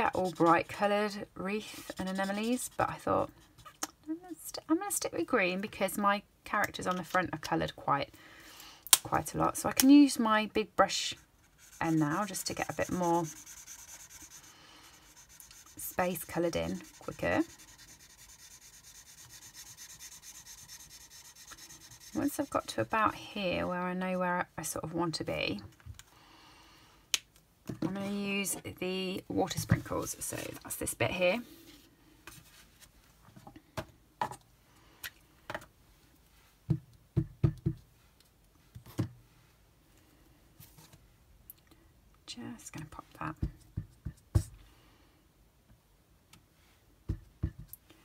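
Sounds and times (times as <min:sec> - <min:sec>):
marker rubbing over card: 0:00.0 - 0:00.7, 0:01.6 - 0:02.9, 0:11.1 - 0:22.6.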